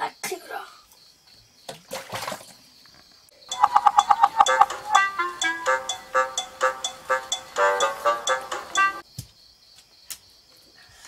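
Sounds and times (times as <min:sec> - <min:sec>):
water splashing: 0:01.7 - 0:02.6
music: 0:03.5 - 0:09.0.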